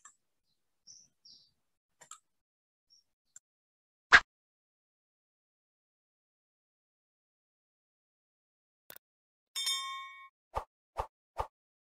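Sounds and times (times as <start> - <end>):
bell-like ding: 9.6 - 10.3.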